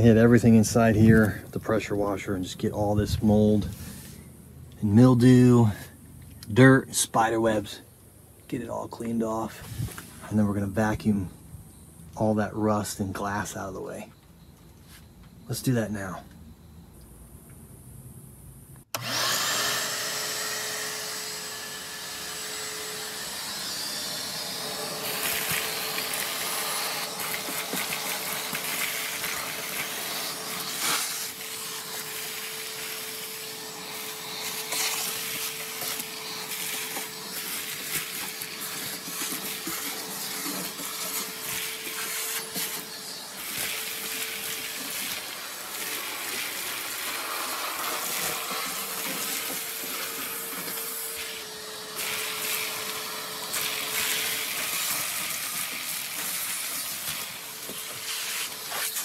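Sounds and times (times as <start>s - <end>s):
shop vacuum humming: 18.9s - 59.0s
debris rattling up vacuum hose: 24.1s - 59.0s.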